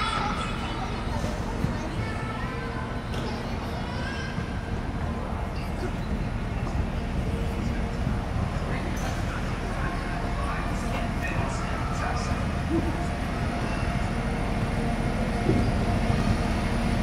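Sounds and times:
steady low rumble: 4.4s - 17.0s.

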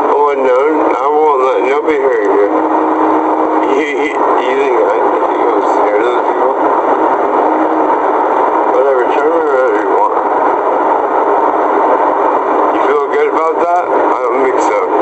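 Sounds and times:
muffled voices: 0.0s - 15.0s.

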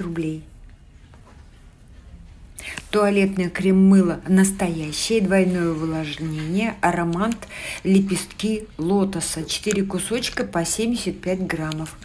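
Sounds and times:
woman narrating: 0.0s - 0.6s, 2.6s - 12.0s
woman breathing in: 7.5s - 7.8s.

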